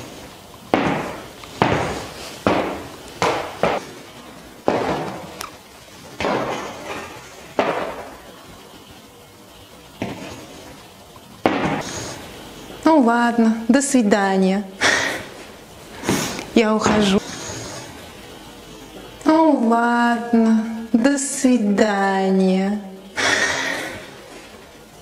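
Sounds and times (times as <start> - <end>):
stiletto heels clicking on hard floor: 0.7 - 4.0, 4.6 - 5.5.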